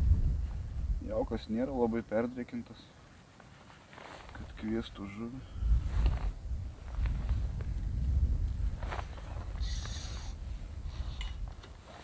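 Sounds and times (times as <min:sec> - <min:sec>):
wind buffeting microphone: 0:00.0 - 0:01.6, 0:05.4 - 0:11.6.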